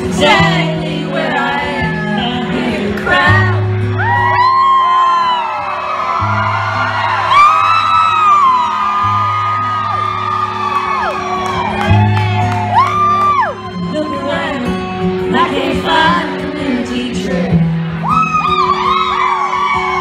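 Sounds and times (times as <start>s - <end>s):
crowd whooping and singing along: 0.0s - 20.0s
live band playing country music: 0.0s - 20.0s.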